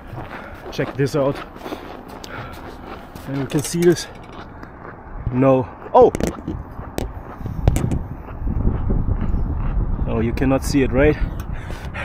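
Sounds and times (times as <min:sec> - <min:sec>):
wind rumble: 0:02.0 - 0:12.0
microphone handling noise: 0:05.2 - 0:10.1.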